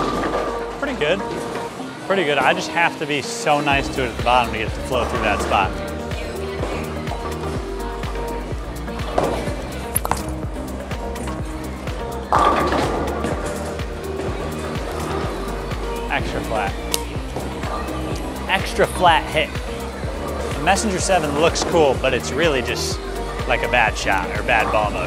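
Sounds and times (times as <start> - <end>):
bowling ball rolling: 0.0 - 1.8, 8.9 - 16.5
background music: 0.0 - 25.0
bowling ball thud: 12.3 - 13.6.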